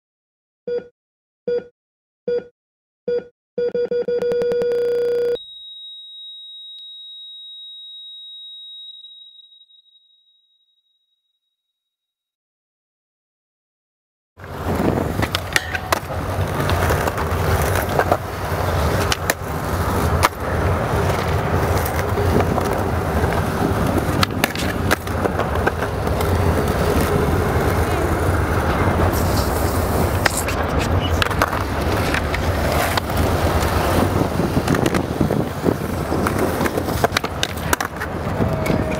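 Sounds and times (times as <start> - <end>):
heart monitor flatline tone: 3.1 - 10.0
higher steady tone: 5.4 - 11.7
skateboard clacks: 14.4 - 38.9
skateboard wheels rolling on concrete: 14.4 - 38.9.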